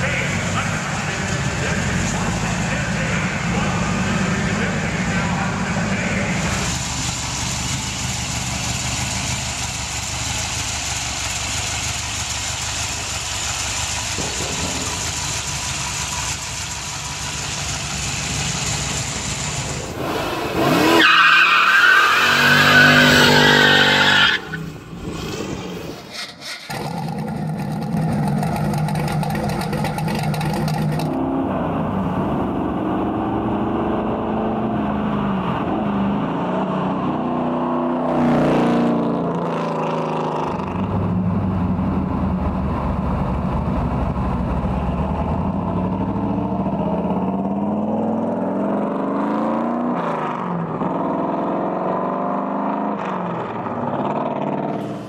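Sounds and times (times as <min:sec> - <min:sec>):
car engine revving: 0:00.0 - 0:55.0
tyre squeal: 0:20.8 - 0:24.6.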